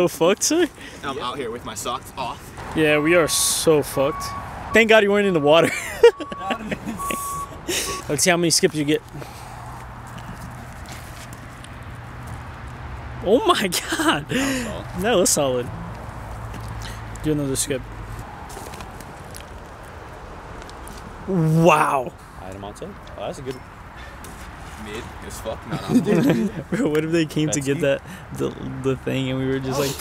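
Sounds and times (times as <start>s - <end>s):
outdoor background noise: 0.0s - 30.0s
high steady beep: 2.8s - 8.1s.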